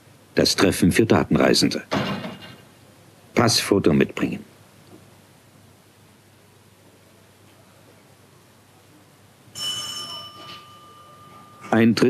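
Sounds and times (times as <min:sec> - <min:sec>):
doorbell tone: 0:09.6 - 0:11.8.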